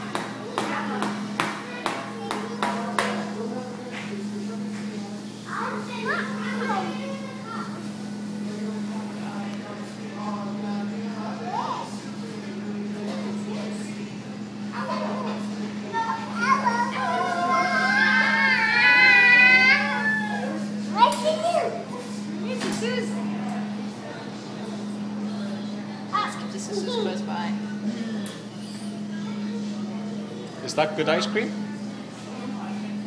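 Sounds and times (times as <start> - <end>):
child squealing: 17.2 - 20.6.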